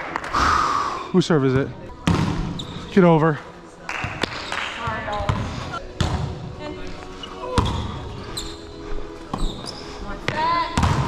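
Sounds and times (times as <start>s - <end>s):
hands smacking volleyball: 3.9s - 6.2s.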